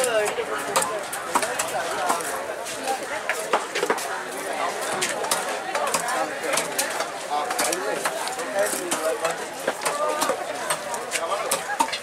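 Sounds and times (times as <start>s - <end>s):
voices: 0.0s - 12.0s.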